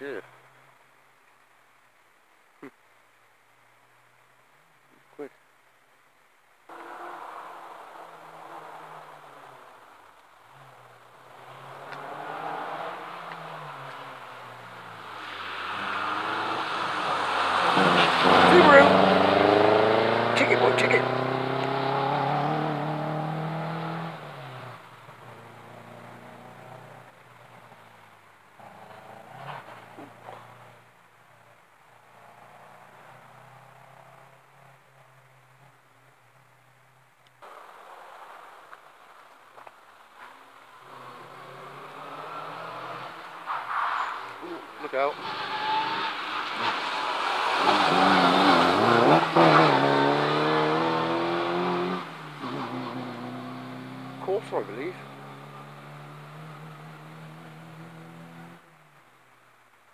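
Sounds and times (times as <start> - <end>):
rally car engine passing: 6.7 - 9.8, 10.7 - 27.9, 28.6 - 30.8, 40.7 - 58.8.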